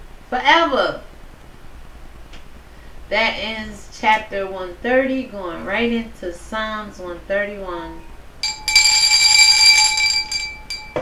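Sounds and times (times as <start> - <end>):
hand bell ringing: 8.4 - 11.0.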